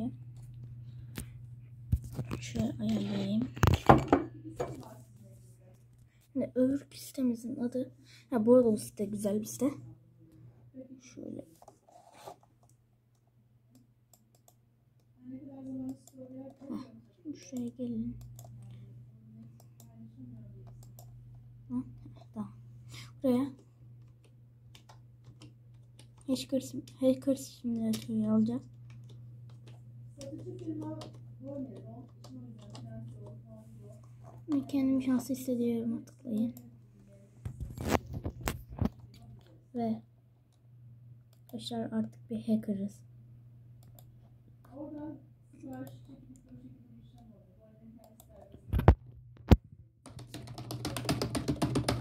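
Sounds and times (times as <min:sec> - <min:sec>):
faint steady hum: 0:00.0 - 0:52.0.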